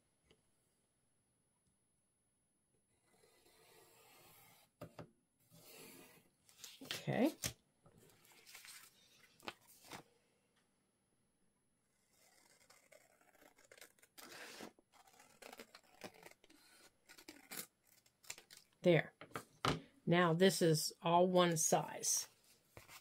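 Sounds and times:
scissors snipping paper: 0:12.1 - 0:18.7.

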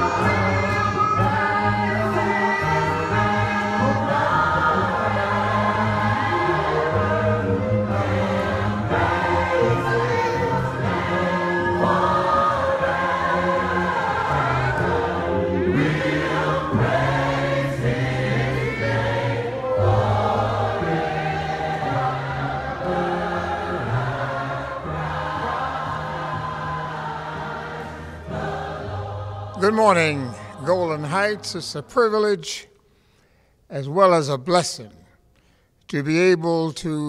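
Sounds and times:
gospel choir singing: 0:00.0 - 0:32.7.

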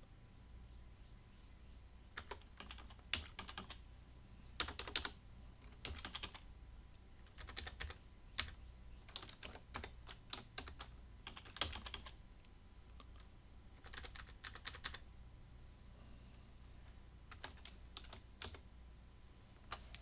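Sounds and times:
computer keyboard typing: 0:02.1 - 0:03.8, 0:04.6 - 0:06.5, 0:07.2 - 0:12.2, 0:12.9 - 0:15.0, 0:17.3 - 0:18.7.

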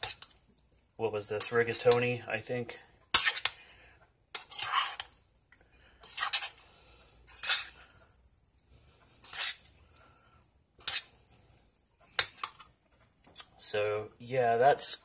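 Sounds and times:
metal spoon scraping a saucepan: 0:01.2 - 0:02.4, 0:03.1 - 0:03.6, 0:04.3 - 0:05.2, 0:06.0 - 0:08.0, 0:09.0 - 0:10.0, 0:10.8 - 0:11.5, 0:12.1 - 0:13.5.

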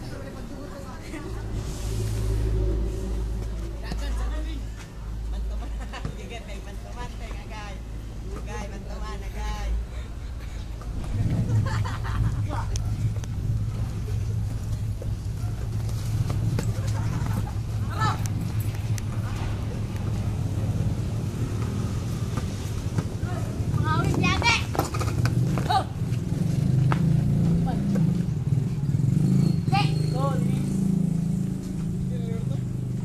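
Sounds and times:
steady low rumble: 0:00.0 - 0:05.8, 0:09.7 - 0:24.6.

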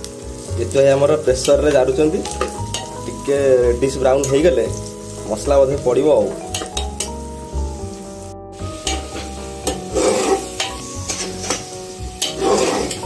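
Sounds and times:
background music: 0:00.0 - 0:13.0
onions sizzling in a pot: 0:00.0 - 0:13.0
metal spoon scraping a pot: 0:08.9 - 0:11.6, 0:12.2 - 0:13.0.

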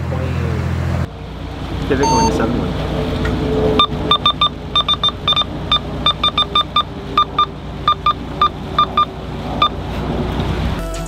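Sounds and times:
boat engine running: 0:00.0 - 0:10.8
radio button beeps: 0:02.0 - 0:02.4, 0:03.8 - 0:09.8.

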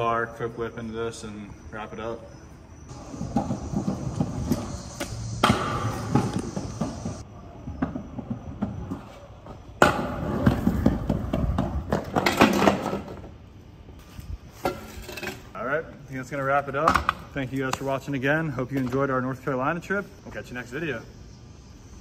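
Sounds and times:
scooter wheels rolling on concrete: 0:02.8 - 0:20.0
scooter landing impact: 0:03.2 - 0:07.2.

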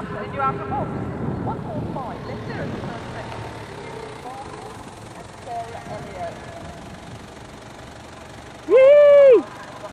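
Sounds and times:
faint outdoor background: 0:00.0 - 0:09.9.

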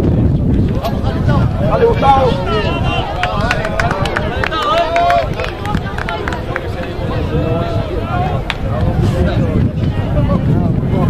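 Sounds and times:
players shouting: 0:00.8 - 0:09.3.

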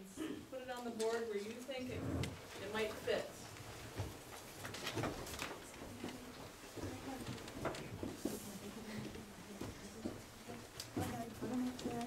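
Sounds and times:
paper rustling and shuffling: 0:02.3 - 0:12.0
faint murmur of voices: 0:05.5 - 0:12.0.

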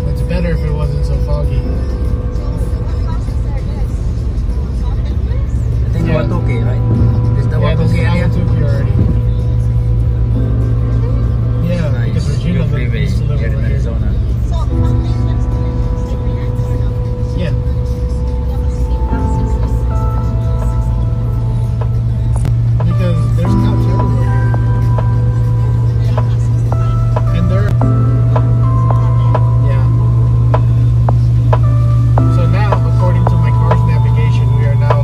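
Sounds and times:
car road and engine rumble: 0:00.0 - 0:35.0
music: 0:00.0 - 0:35.0.

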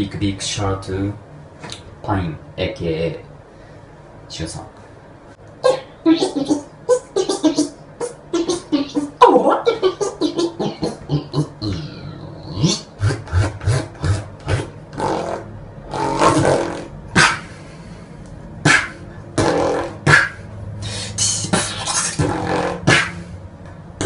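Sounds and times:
beatboxing drum sounds: 0:05.6 - 0:17.6, 0:18.6 - 0:23.3.

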